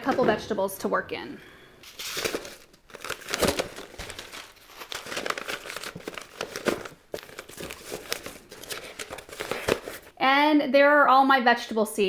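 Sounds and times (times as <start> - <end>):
paper packets rustling: 1.8 - 10.2.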